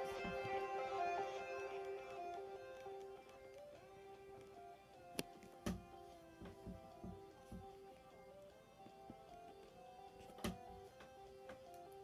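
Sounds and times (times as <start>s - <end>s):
instrumental backing music: 0.0s - 12.0s.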